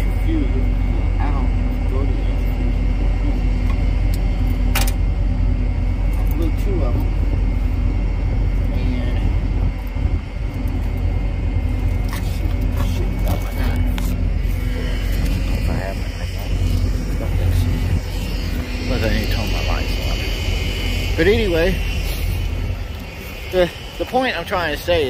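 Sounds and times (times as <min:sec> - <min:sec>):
truck engine idling: 0:00.0 - 0:25.0.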